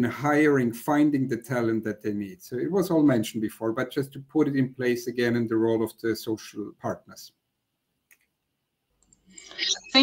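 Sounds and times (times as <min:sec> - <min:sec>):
woman speaking: 0:09.4 - 0:10.0.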